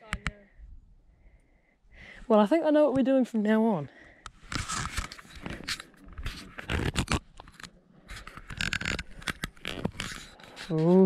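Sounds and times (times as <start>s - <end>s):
scraping and scratching handling noise: 4.3s - 11.0s.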